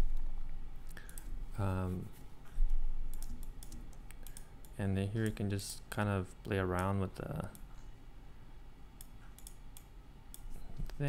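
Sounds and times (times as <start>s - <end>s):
computer mouse clicking: 0.9s - 1.3s, 3.1s - 5.4s, 9.0s - 11.0s.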